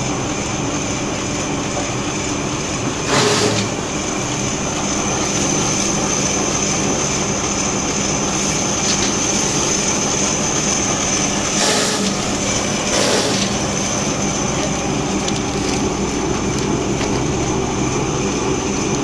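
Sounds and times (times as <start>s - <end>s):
paper shredder running: 0.0s - 19.0s.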